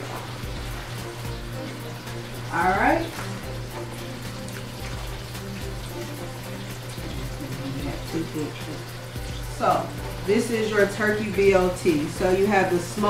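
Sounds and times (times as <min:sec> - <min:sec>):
background music with held tones: 0:00.0 - 0:13.0.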